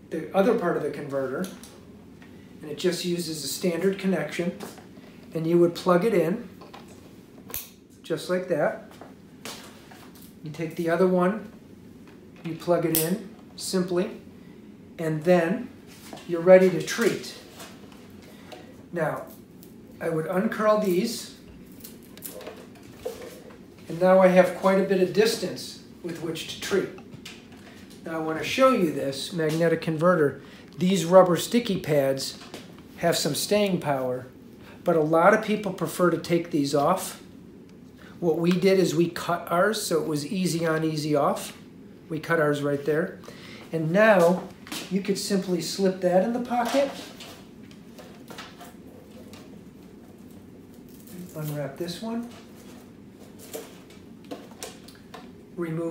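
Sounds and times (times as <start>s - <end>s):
plastic wires clicking and rustling: 21.6s - 23.6s
soft rustling of cables: 43.1s - 55.4s.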